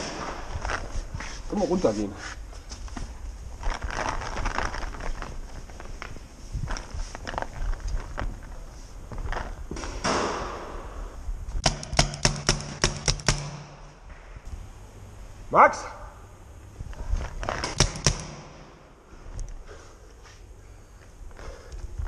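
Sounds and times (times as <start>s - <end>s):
knocks and scuffs of movement: 0.0s - 10.2s
steady low hum: 0.0s - 22.0s
paintball marker shots: 9.8s - 10.7s, 11.6s - 13.8s, 17.6s - 18.8s.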